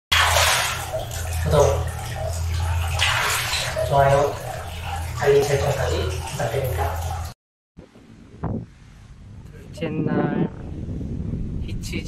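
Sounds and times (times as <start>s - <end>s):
steady low hum: 0.1s - 7.3s
bath water sloshing and splashing: 0.1s - 7.4s.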